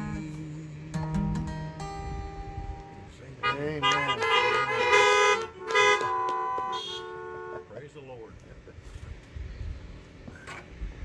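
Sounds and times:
car horns honking: 3.4s - 7.9s.

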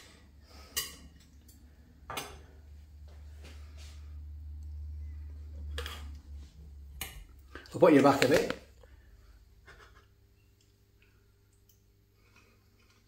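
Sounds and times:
low steady rumble: 1.3s - 7.7s.

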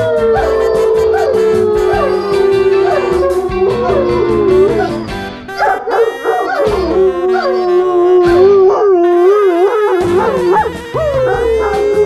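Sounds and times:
background music with steady beat: 0.0s - 12.0s
dog howling: 0.0s - 12.0s.

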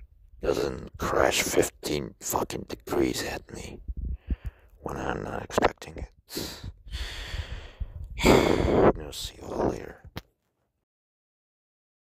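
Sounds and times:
man sighing: 6.3s - 9.0s.

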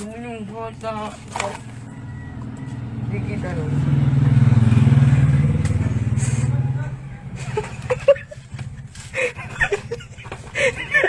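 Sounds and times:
vehicle engine passing by: 1.5s - 9.4s.

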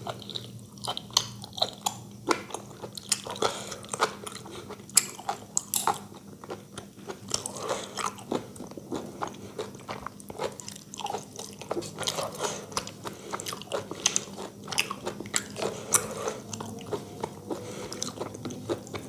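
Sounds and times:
person chewing with wet mouth sounds: 0.0s - 19.0s.

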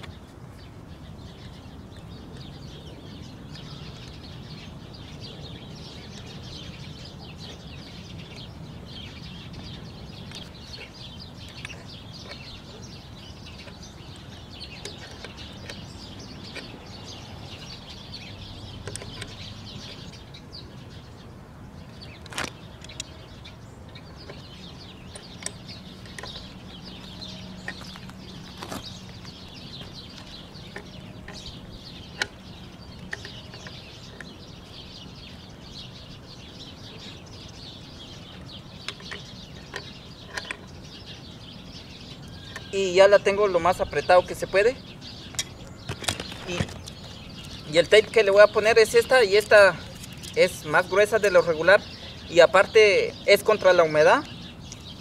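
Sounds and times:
birds chirping: 0.0s - 55.0s.

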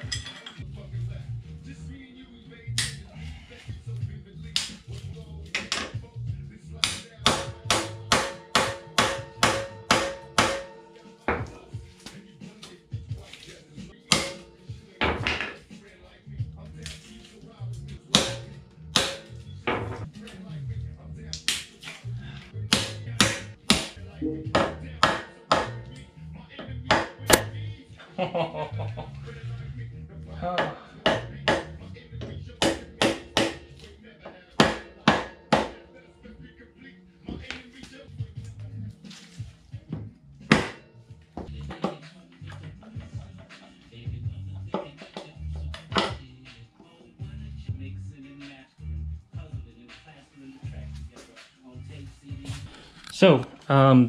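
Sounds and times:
background music: 0.0s - 54.0s.

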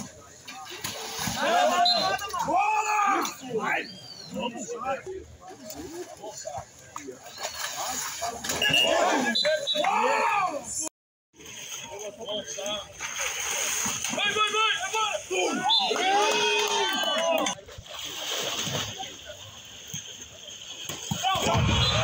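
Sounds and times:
water splashing and sloshing: 0.0s - 3.7s, 5.0s - 10.8s, 11.4s - 22.0s
people shouting: 1.2s - 3.8s, 8.5s - 10.9s, 14.1s - 17.6s.

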